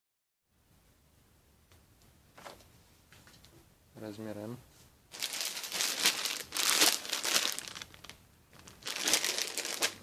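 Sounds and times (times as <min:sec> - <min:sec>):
plastic bag crinkling: 0:05.1 - 0:10.0.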